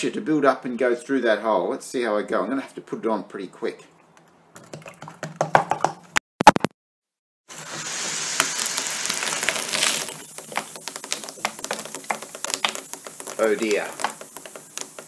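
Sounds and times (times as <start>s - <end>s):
fizzing with small crackles: 7.5s - 15.0s
liquid jet spraying hiss: 7.5s - 15.0s.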